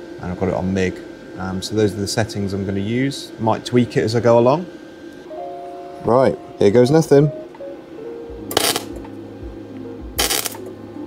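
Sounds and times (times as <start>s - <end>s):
welder low hum: 0.0s - 11.0s
welding arc crackle: 8.5s - 9.1s, 10.2s - 10.7s.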